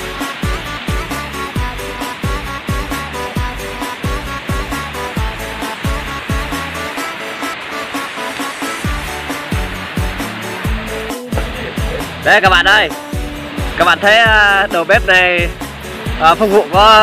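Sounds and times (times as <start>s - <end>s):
deep kick drum beat: 0.0s - 6.9s, 8.9s - 17.0s
held synth notes: 0.0s - 16.8s.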